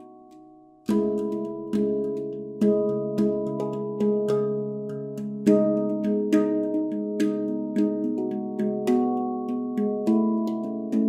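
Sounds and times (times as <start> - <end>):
handpan melody played by hand: 0.0 - 11.0.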